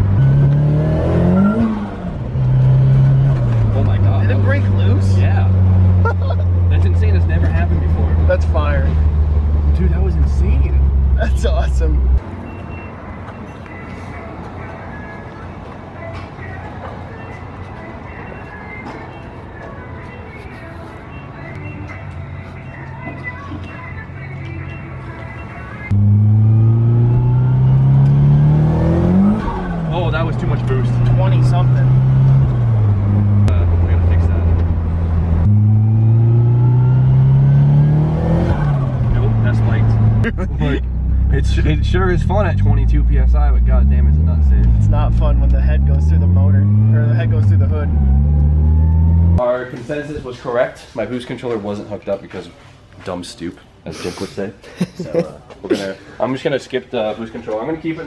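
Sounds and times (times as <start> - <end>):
car engine accelerating: 0.0 - 12.2, 25.9 - 49.4.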